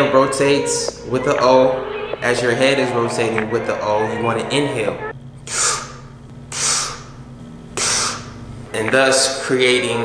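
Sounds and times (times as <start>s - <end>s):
hissing puffs of breath: 5.4s - 7.2s, 7.8s - 8.4s.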